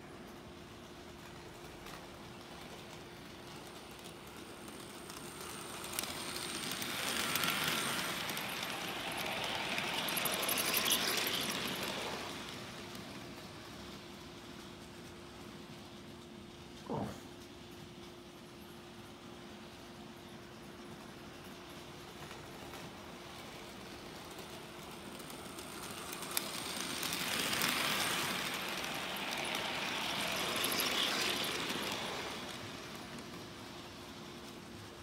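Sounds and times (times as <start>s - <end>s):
model train clatter and motor whir: 0.0s - 35.0s.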